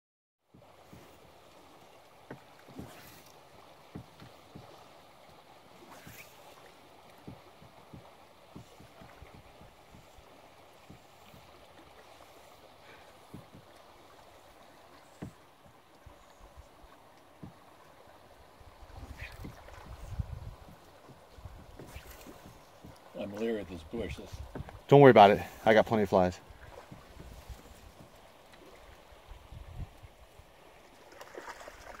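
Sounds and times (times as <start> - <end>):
moving river water: 0.4 - 32.0
water slapping boat hull: 0.5 - 32.0
dull low thumps: 18.8 - 23.0.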